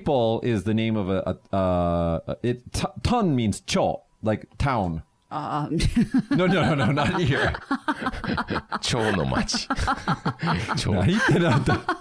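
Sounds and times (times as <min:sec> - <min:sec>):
people talking: 0:00.0 - 0:11.9
chuckling laughter: 0:05.8 - 0:12.0.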